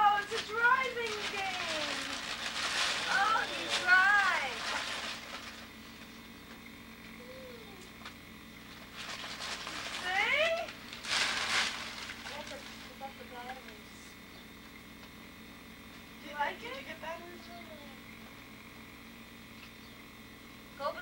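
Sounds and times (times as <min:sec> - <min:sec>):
rustling noise: 0:00.2 - 0:06.1, 0:08.8 - 0:13.1.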